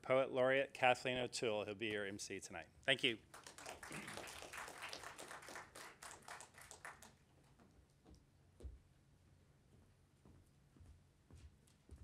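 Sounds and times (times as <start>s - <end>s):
light scattered applause: 3.0s - 7.2s.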